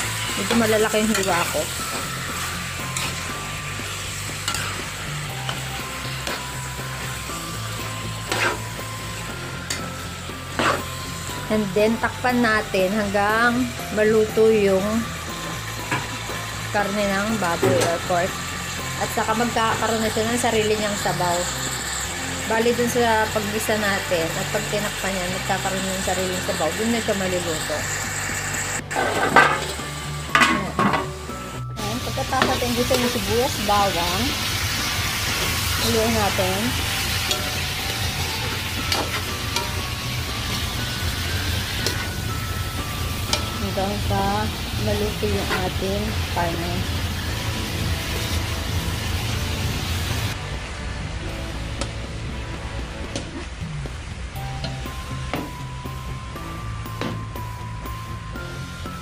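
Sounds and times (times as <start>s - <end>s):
meat sizzling in a pan: 0.0s - 50.4s.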